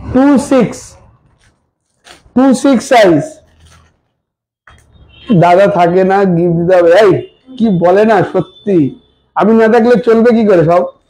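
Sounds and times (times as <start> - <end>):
man speaking: 0.0 - 1.1, 2.3 - 3.5, 5.3 - 11.0.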